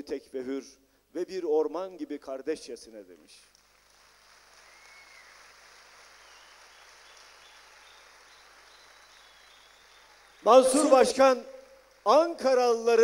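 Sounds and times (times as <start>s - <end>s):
audience applause: 3.6s - 12.4s
faint whistle-like tone: 7.5s - 10.2s.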